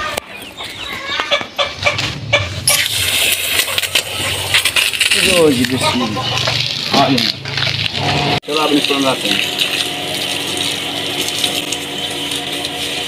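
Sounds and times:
chickens clucking: 0.0s - 2.7s, 3.4s - 4.8s, 5.4s - 7.0s.

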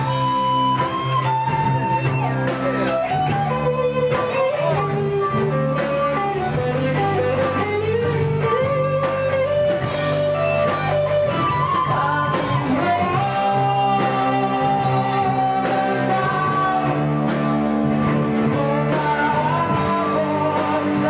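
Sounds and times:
bass: 0.0s - 21.0s
drum kit: 0.0s - 21.0s
electric guitar lead with bending notes: 0.0s - 21.0s
keyboard: 0.0s - 21.0s.

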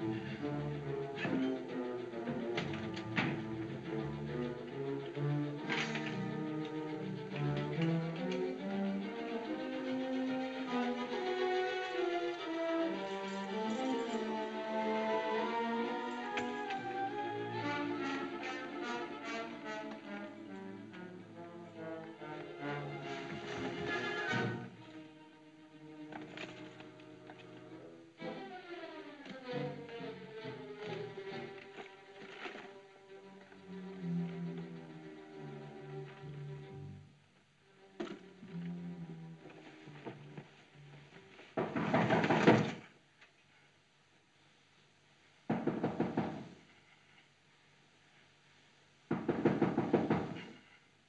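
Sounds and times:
orchestral bowed strings: 0.0s - 42.8s
rapid knocking on a door: 45.5s - 46.5s, 49.1s - 50.5s.

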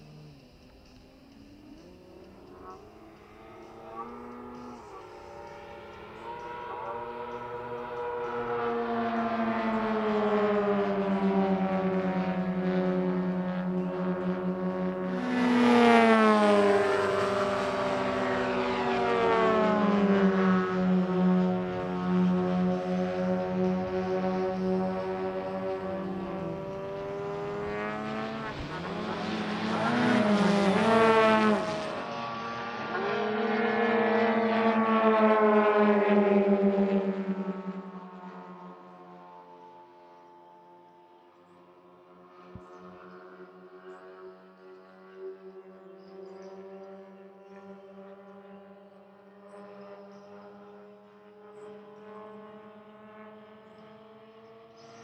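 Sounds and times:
model aircraft engines flying past: 0.0s - 55.0s.

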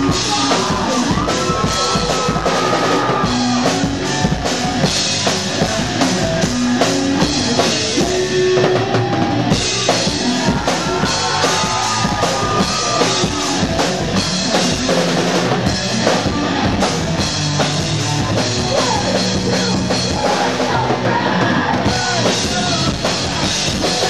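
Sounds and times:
electric guitars: 0.0s - 24.0s
rock band playing live: 0.0s - 24.0s.

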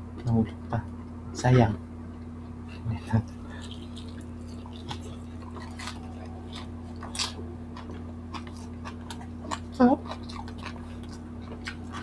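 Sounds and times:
steady low hum: 0.0s - 12.0s
people chewing food: 2.1s - 12.0s.

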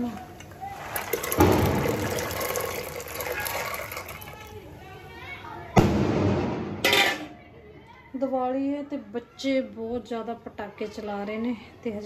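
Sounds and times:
beans splashing into water: 0.7s - 4.6s.

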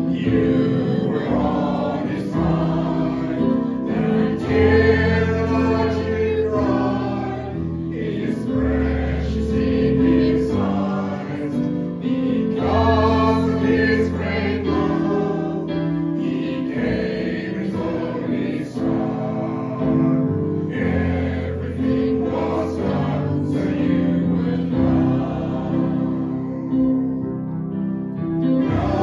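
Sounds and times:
congregation singing a hymn: 0.0s - 29.0s.

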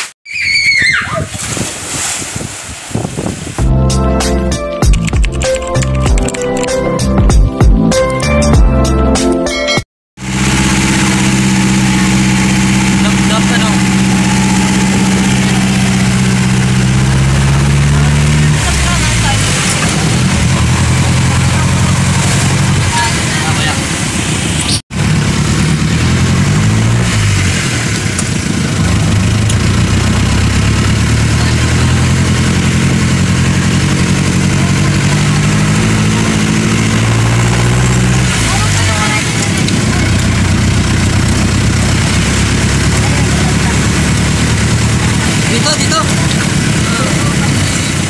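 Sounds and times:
road noise on wet pavement: 10.2s - 48.0s
vehicle engine running: 10.2s - 48.0s.

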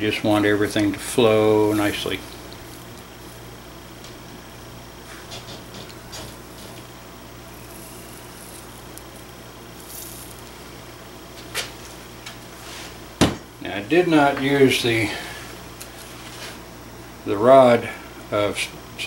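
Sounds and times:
solder sizzling on hot metal: 0.3s - 17.8s
faint brush scrapes: 9.8s - 10.5s, 12.5s - 13.0s, 16.0s - 16.6s.

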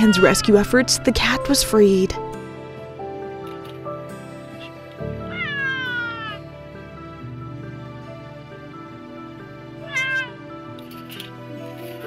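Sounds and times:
cat meowing in distress: 0.0s - 0.8s, 4.5s - 6.4s, 9.8s - 10.4s
soft background music: 0.0s - 12.0s.

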